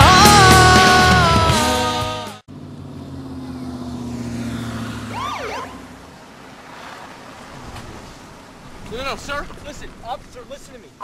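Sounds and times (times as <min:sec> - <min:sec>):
police siren whoop: 0:05.0 - 0:05.9.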